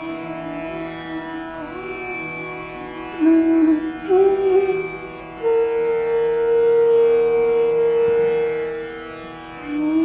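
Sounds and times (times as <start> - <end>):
bamboo flute long note: 0.0 - 2.2, 3.1 - 8.9, 9.6 - 10.0
faint steady drone: 0.0 - 10.0.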